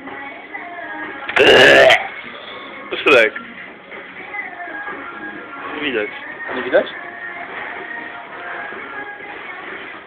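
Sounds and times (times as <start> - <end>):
background music: 0.0 - 10.0
wordless vocal burst: 1.3 - 2.1.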